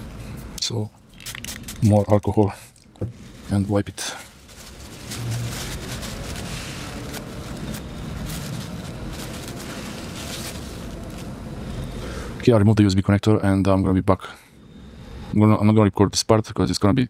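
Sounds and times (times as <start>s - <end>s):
paper towel rubbing and crinkling: 3.1s - 11.8s.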